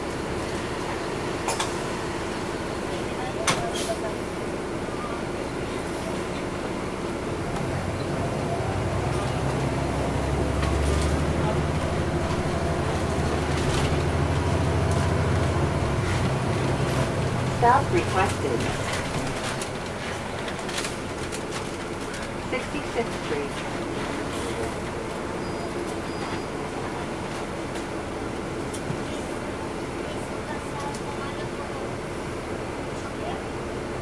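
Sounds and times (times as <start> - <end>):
bus diesel engine droning: 0.0 - 34.0
road and body noise: 7.4 - 31.4.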